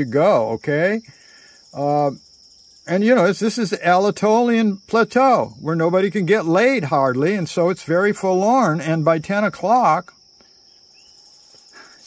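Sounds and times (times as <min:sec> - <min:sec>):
high-pitched insect trilling: 0:00.0 - 0:12.0.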